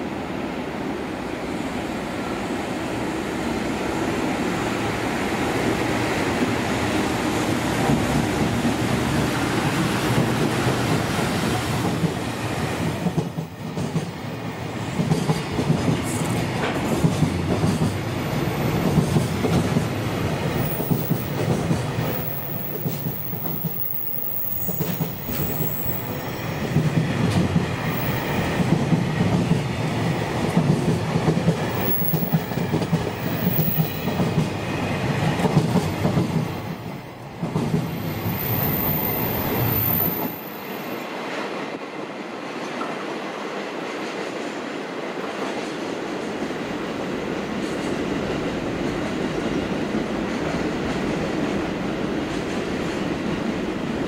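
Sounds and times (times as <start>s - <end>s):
train wheels rumbling on rails: 1.0s - 54.0s.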